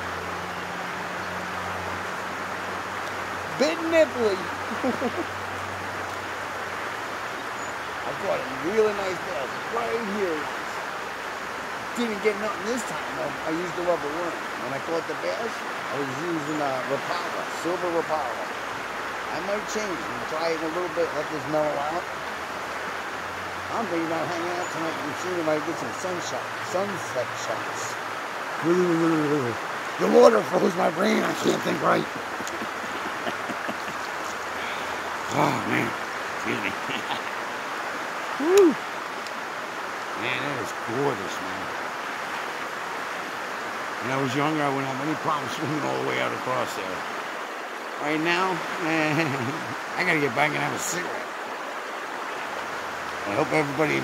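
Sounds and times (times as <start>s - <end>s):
water splashes and drips: 0.0s - 36.5s, 37.3s - 53.8s
fast-flowing river rushing: 0.0s - 54.0s
man's voice: 3.5s - 4.6s, 12.0s - 18.2s, 28.6s - 37.3s, 40.2s - 41.6s, 53.3s - 54.0s.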